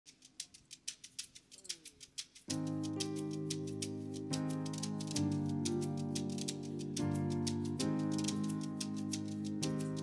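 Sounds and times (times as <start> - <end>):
gourd rattle shaken: 0.1 - 10.0.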